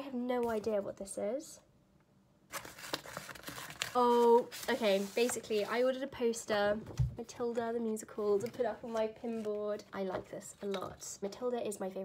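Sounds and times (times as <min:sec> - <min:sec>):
rustling and crinkling of paper: 0:02.5 - 0:06.1.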